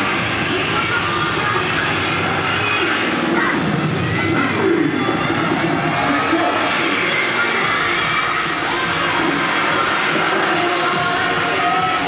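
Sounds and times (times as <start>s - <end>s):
backing music: 0.0s - 12.0s
crowd cheering and shouting: 0.0s - 12.0s.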